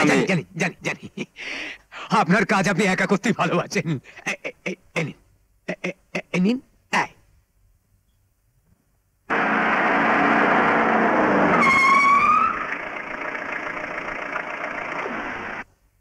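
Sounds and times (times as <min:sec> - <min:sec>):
jeep engine running: 0:09.3 - 0:15.7
short high squeal: 0:11.4 - 0:12.7.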